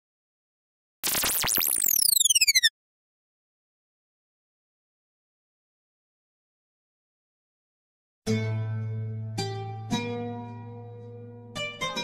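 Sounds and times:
synthesized electronic tones: 1.0 - 2.7.

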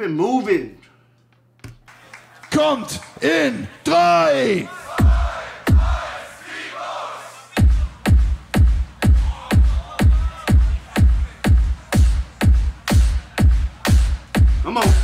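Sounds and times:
crowd noise: 1.9 - 14.4
looped beatboxed kick: 5.0 - 6.0, 7.5 - 15.0
sharp beatbox hits: 7.6 - 15.0.

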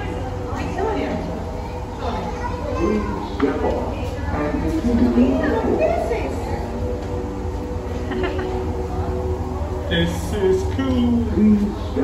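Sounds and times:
chatter of people and children: 0.0 - 12.0
steady low hum: 0.0 - 12.0.

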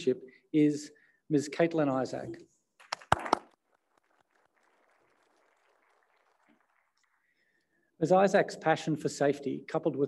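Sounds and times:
hand claps close to microphone: 2.8 - 7.1
faint scattered applause: 2.8 - 7.4.

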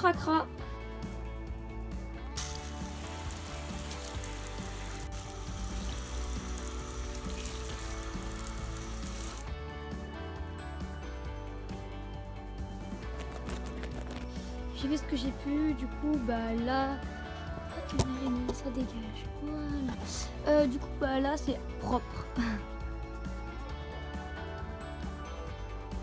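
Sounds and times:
background music: 0.0 - 26.0
hose spraying water on wood: 2.4 - 9.5.

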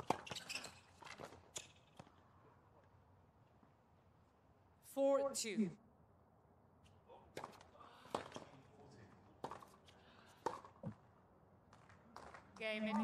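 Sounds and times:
tennis ball bouncing: 9.4 - 11.1
tennis ball hit by racket: 10.4 - 11.0.

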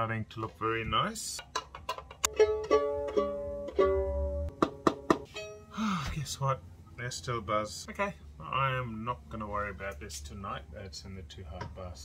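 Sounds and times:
violin strings plucked: 1.4 - 5.8.

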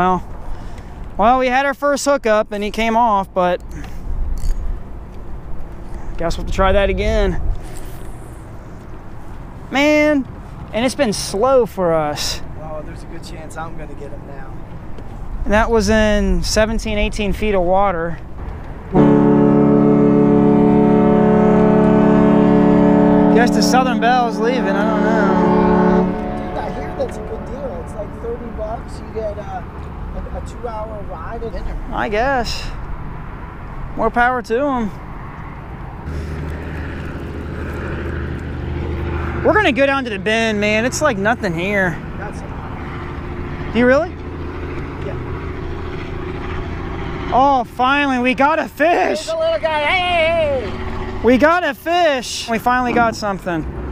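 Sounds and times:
low engine drone: 18.2 - 33.8, 35.6 - 48.4, 49.1 - 51.6
riverboat horn blast: 18.4 - 29.4, 36.0 - 48.2, 48.9 - 51.5.

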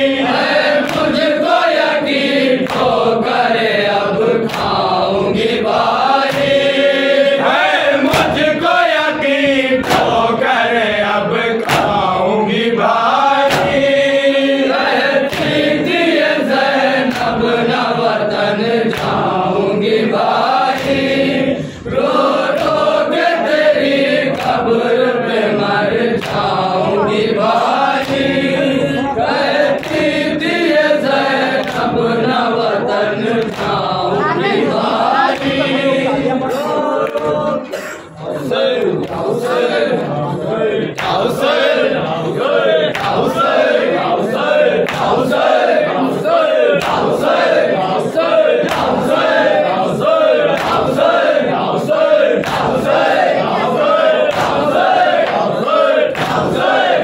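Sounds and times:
group chanting along: 0.0 - 57.0
men chanting through a microphone: 0.0 - 57.0
chest-beating slaps: 0.4 - 1.2, 2.3 - 3.0, 4.4 - 6.8, 8.0 - 10.4, 11.6 - 12.2, 13.0 - 14.1, 15.2 - 15.9, 17.0 - 17.5, 18.9 - 19.4, 20.2 - 22.8, 26.1 - 26.6, 27.4 - 28.5, 29.4 - 32.1, 33.4 - 33.9, 44.8 - 45.2, 54.2 - 55.5.

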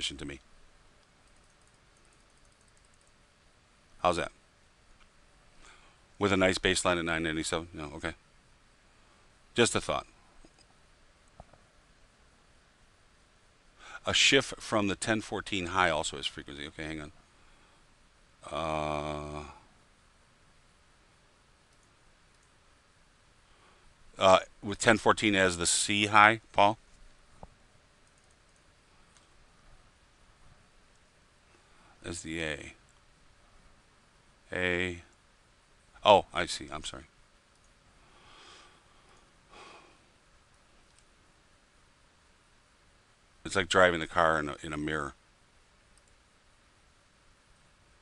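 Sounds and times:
faint room hiss: 0.0 - 48.0
computer mouse clicks: 1.0 - 3.2, 21.7 - 22.6, 27.4 - 29.3, 37.5 - 37.8, 40.5 - 41.1, 45.9 - 46.2.

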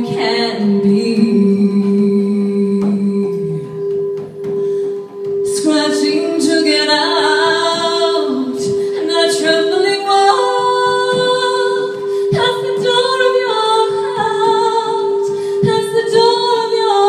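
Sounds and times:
woman singing: 0.0 - 4.6, 5.4 - 17.0.

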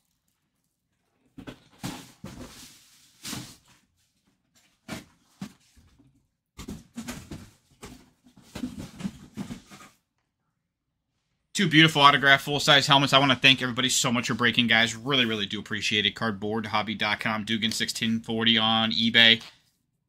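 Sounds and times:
handling rustles and knocks: 1.0 - 10.2.

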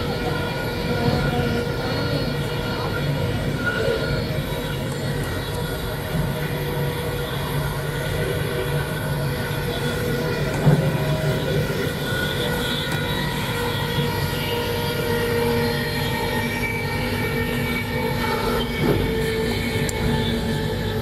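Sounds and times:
train running drone: 0.0 - 21.0.

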